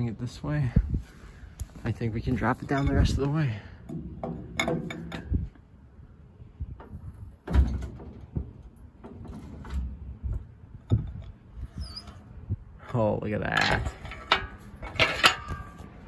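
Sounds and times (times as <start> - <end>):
knocks and creaks: 1.6 - 5.7, 6.6 - 12.7.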